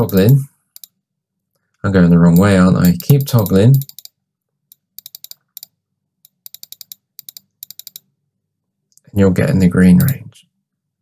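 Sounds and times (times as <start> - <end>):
computer mouse button clicking: 4.7 - 5.7, 6.3 - 8.0.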